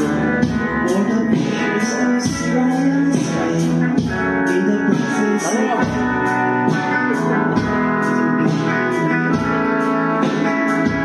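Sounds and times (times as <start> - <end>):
bass: 0.0 - 11.0
drum kit cymbals: 0.0 - 11.0
electric guitar: 0.0 - 11.0
keyboard: 0.0 - 11.0.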